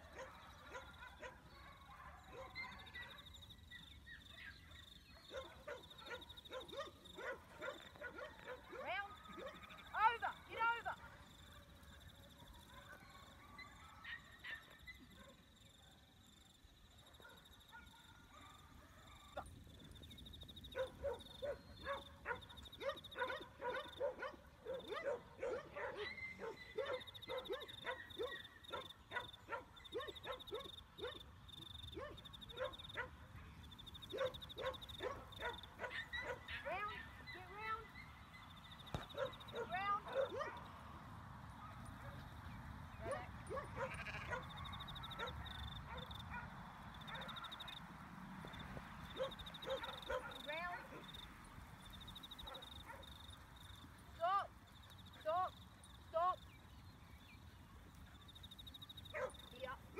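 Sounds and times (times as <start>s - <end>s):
sheep bleating: 43.8s - 44.4s.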